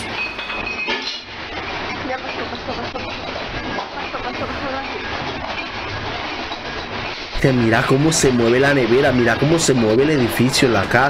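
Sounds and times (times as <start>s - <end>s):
furniture and dishes rattling: 0.0s - 11.0s
house shaking rumble: 0.0s - 11.0s.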